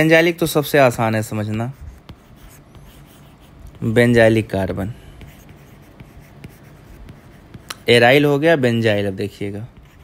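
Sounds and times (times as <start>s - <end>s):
low background noise: 0.0s - 10.0s.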